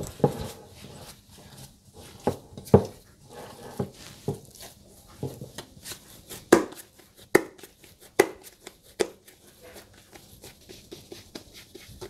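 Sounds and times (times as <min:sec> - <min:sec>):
dough slapping and squelching: 0:00.0 - 0:12.0.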